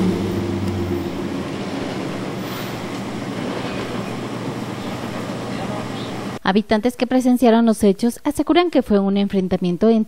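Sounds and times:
pickup truck engine driving off: 0.0 - 4.5
street noise: 0.0 - 6.4.

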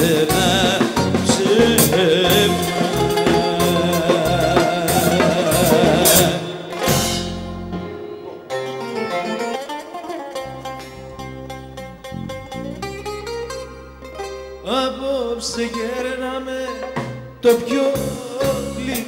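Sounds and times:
man singing: 0.0 - 7.1, 14.6 - 19.0
drums: 0.0 - 14.7, 15.4 - 19.0
bouzouki plucked melody: 0.0 - 19.0
folk band playing: 0.0 - 19.0.

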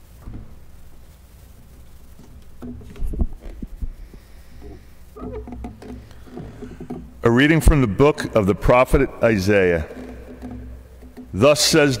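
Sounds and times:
knocks and rubbing: 0.0 - 12.0
low electrical hum: 0.0 - 12.0
microphone handling thumps: 0.0 - 12.0.

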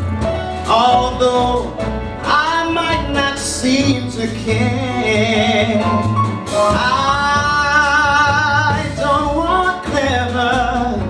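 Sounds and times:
man singing jazz with vibrato: 0.0 - 11.0
piano: 0.0 - 11.0
upright bass: 0.0 - 11.0.

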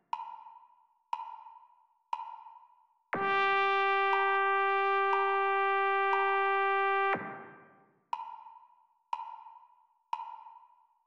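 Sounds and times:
trumpet note: 3.2 - 7.6
metronome click: 5.1 - 5.3.

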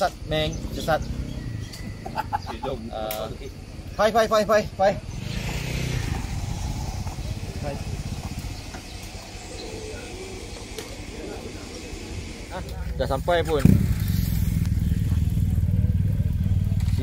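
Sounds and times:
motorcycle engine rumbling: 0.0 - 17.0.

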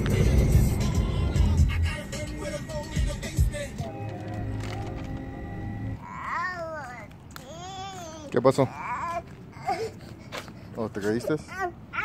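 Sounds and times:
small child whimpering: 6.0 - 12.0.

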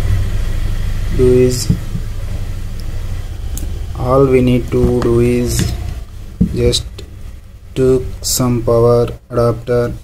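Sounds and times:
low background rumble: 0.0 - 10.0
person speaking: 1.1 - 2.1, 2.8 - 10.0.

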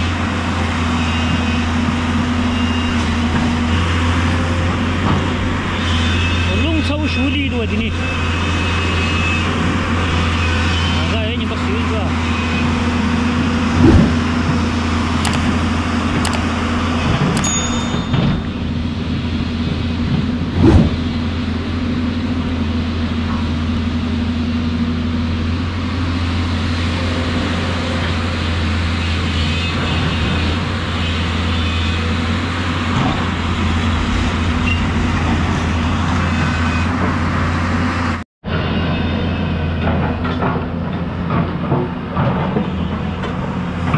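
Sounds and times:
excavator diesel engine running: 0.0 - 43.9.

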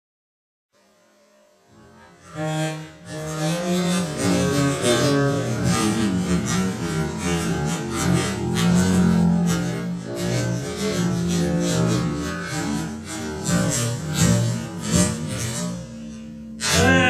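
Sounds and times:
plucked bass guitar notes: 3.3 - 17.0.

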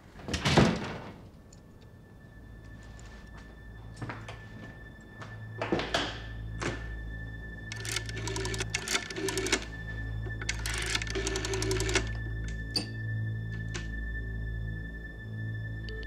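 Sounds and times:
low music drone: 1.2 - 16.0
rotary dial clicking: 7.7 - 9.7, 10.3 - 12.8.

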